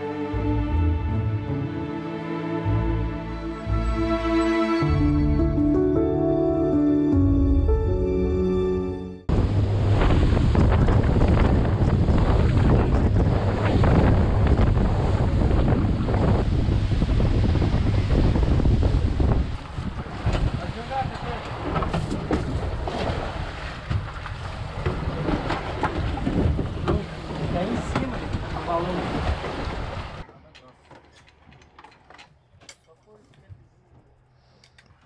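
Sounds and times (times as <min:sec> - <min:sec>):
wind buffeting microphone: 0:09.3 - 0:30.2
motorboat engines rumbling: 0:09.3 - 0:30.3
water splashing around hull: 0:09.3 - 0:30.3.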